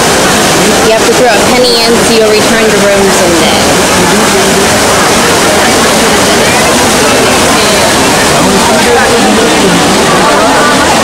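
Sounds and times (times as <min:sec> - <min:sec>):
fountain water cascading: 0:00.0 - 0:11.0.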